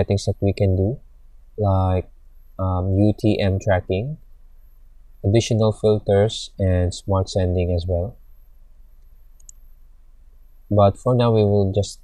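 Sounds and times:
faint room noise: 0.0s - 12.0s
computer mouse clicks: 9.0s - 9.7s.

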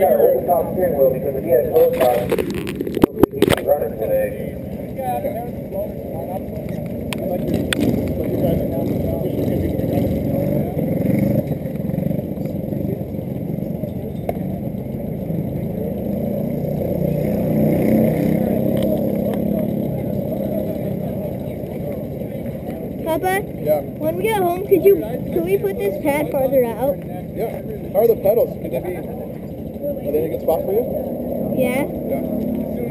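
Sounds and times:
racing kart engines passing: 0.0s - 32.9s.

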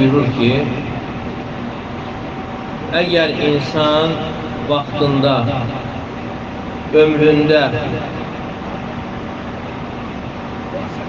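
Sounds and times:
air conditioner hum and hiss: 0.0s - 11.0s.

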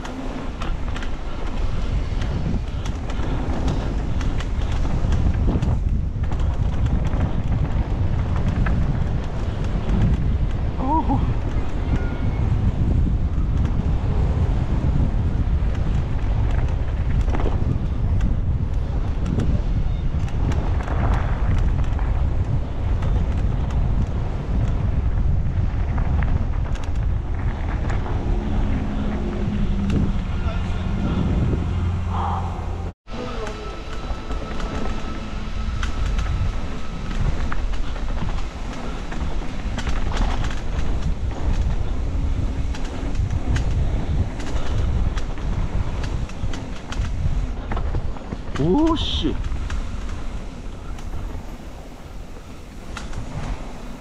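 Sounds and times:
bike tyres rolling on dirt: 0.0s - 32.0s, 33.9s - 54.0s
bike rattling over bumps: 0.0s - 32.1s, 34.3s - 54.0s
wind buffeting microphone: 0.0s - 54.0s.

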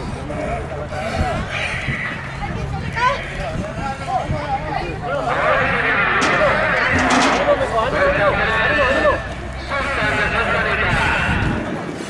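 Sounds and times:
people talking: 0.0s - 11.7s.

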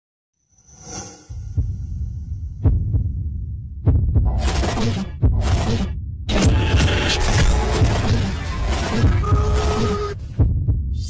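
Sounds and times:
steady low rumble: 1.3s - 4.4s
deep heartbeat-like thumps: 1.4s - 11.0s.

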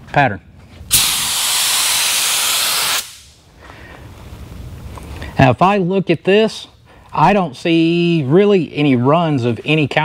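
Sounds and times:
spray gun hissing: 0.9s - 3.4s.

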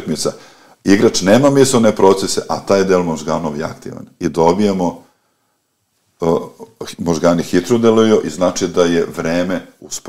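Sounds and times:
man speaking: 0.0s - 5.1s, 6.2s - 10.0s.

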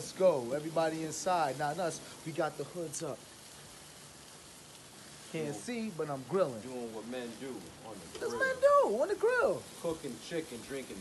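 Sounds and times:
soft steady hiss: 0.0s - 11.0s.

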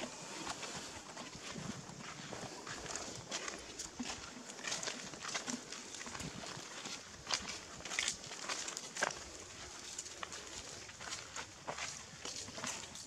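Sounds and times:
footsteps on dry leaves: 0.0s - 13.0s
steady outdoor hiss: 0.0s - 13.0s.

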